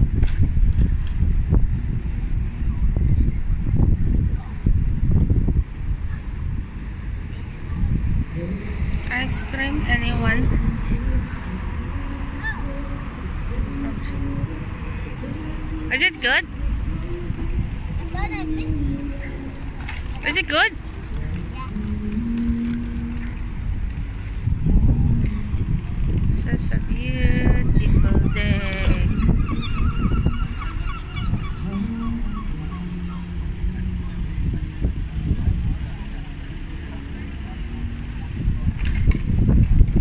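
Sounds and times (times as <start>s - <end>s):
city street traffic rumble: 0.0s - 40.0s
engine hum: 0.0s - 40.0s
faint voices: 1.9s - 40.0s
high voice speaking: 15.9s - 16.5s, 20.1s - 20.8s, 26.4s - 29.2s.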